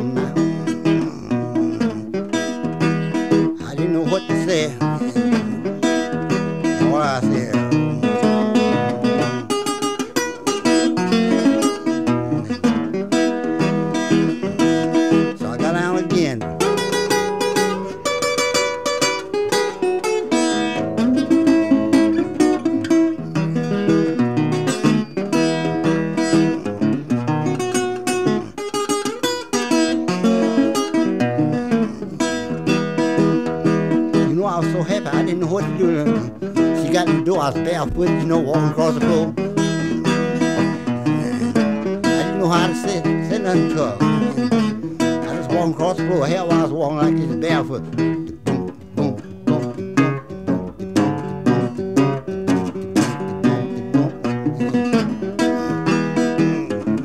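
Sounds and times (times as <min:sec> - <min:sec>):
acoustic blues guitar: 0:00.0 - 0:57.0
guitar sliding tones: 0:00.0 - 0:57.0.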